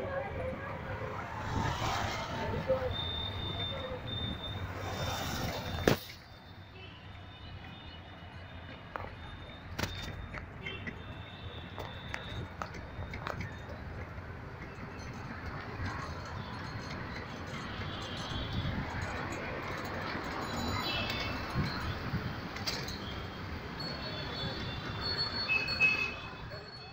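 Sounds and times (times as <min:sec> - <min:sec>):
road traffic hum: 0:00.0 - 0:26.8.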